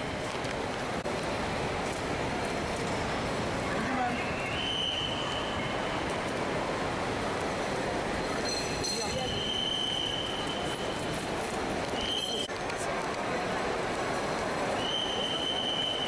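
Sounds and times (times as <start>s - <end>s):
indistinct crowd voices: 0.0s - 16.0s
traffic noise: 0.0s - 16.0s
thin high squeal: 8.4s - 9.5s.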